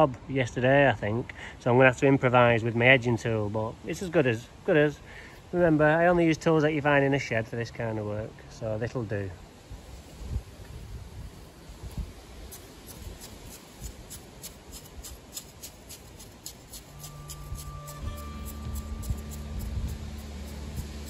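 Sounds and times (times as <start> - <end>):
metal blade scraping sandy soil: 11.9 - 21.0
background music with low notes: 16.9 - 21.0.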